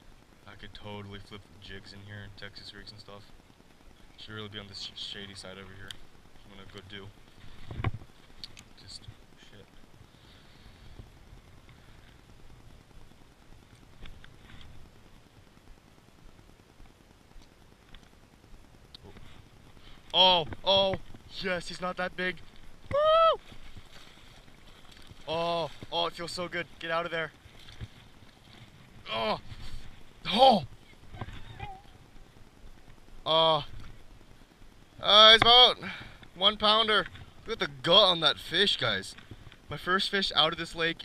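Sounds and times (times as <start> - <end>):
faint low rumble: 0.0 - 41.0.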